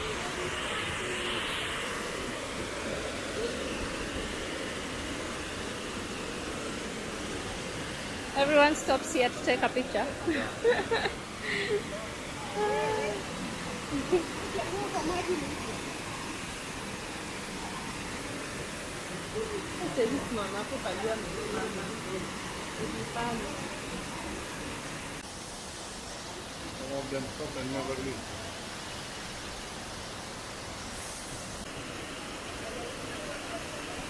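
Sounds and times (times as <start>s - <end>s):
people chatting: 0.0s - 1.8s, 8.4s - 16.0s, 19.1s - 24.5s
waterfall rushing onto rocks: 0.0s - 34.0s.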